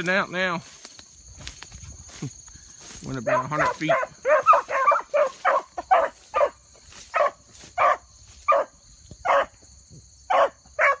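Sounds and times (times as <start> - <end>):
dogs barking: 3.2 - 9.6, 10.3 - 11.0.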